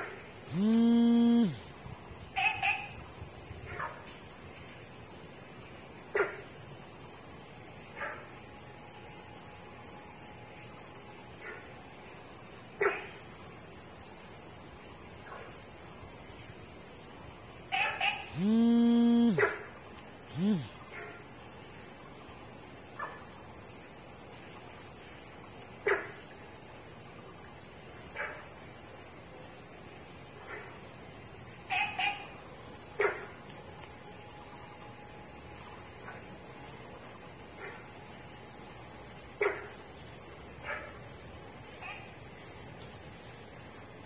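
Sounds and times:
frogs barking calls: 0.0 - 4.1, 6.1 - 6.6, 10.5 - 13.4, 17.7 - 21.3, 30.3 - 33.5, 34.2 - 41.1, 41.7 - 42.4
high insect hiss: 0.0 - 44.0
frog calling: 0.5 - 1.7, 2.4 - 3.0, 17.7 - 19.5, 20.3 - 20.8, 31.7 - 32.4.

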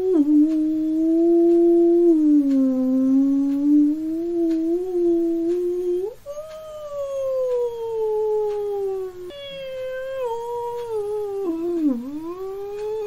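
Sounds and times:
faint ticks: 0.0 - 13.0.

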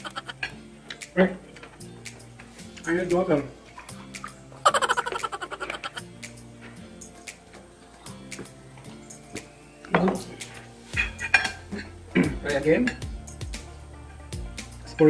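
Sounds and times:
background music: 0.0 - 15.0
glass and cutlery clinking: 10.9 - 12.0, 12.7 - 13.1.

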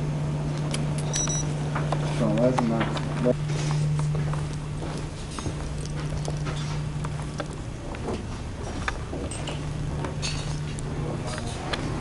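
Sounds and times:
steady low hum: 0.0 - 12.0
footsteps on hard floor: 2.9 - 10.7.

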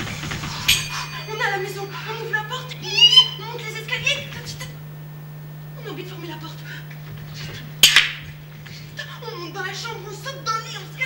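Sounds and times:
low electrical hum: 0.0 - 11.0
person exclaiming: 1.1 - 4.3.

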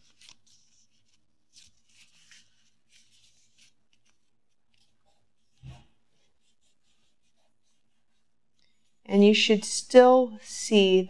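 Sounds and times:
paper rustling: 0.0 - 7.8.

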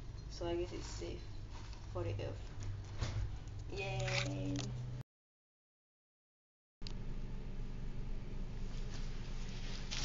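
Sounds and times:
low room hum: 0.0 - 5.0, 6.8 - 10.0
cloth garment rustling: 9.0 - 10.0.

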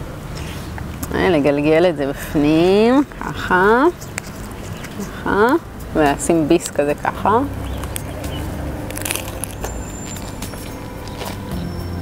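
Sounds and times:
lettuce being bitten and chewed: 3.9 - 11.8
crunching clicks: 7.6 - 11.4.

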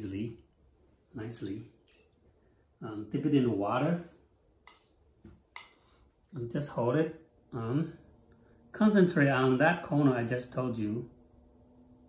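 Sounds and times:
faint clicks and water drips: 1.6 - 2.3, 4.6 - 6.4.

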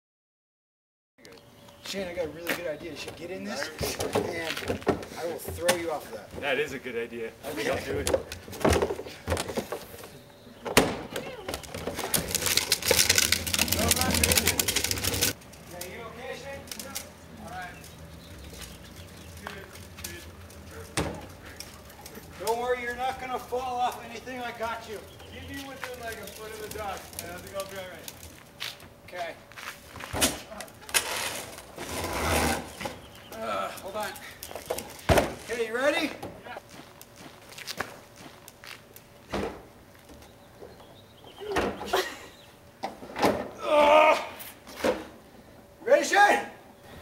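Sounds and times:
trash can rattling over pavement: 10.8 - 17.1, 17.7 - 28.6.

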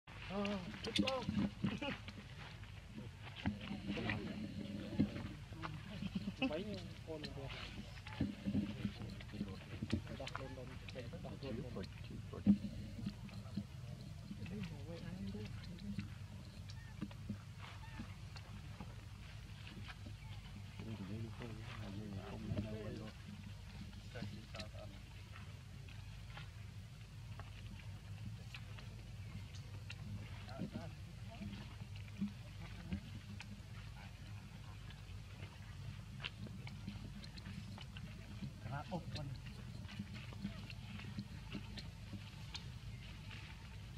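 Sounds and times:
low hum: 0.1 - 43.9
murmur of background voices: 0.1 - 43.9
small crackles: 0.1 - 43.9.

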